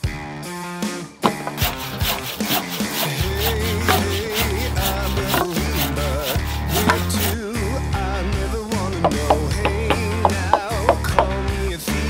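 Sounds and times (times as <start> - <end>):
background music: 0.0 - 12.0
handsaw cutting timber: 1.2 - 7.5, 9.1 - 11.3.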